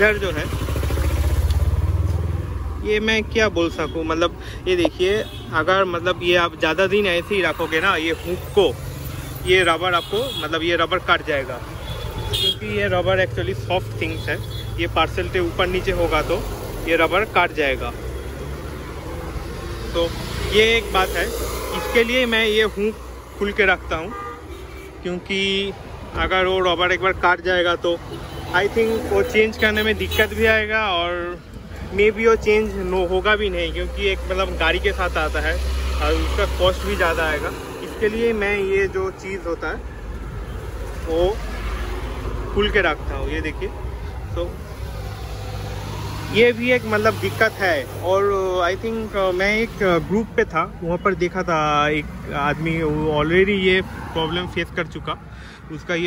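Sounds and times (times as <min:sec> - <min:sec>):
road traffic rumble: 0:00.0 - 0:56.0
vehicle engine humming: 0:00.0 - 0:56.0.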